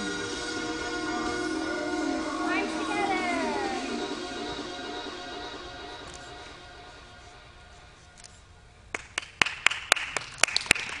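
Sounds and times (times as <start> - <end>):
people clapping: 8.9 - 11.0.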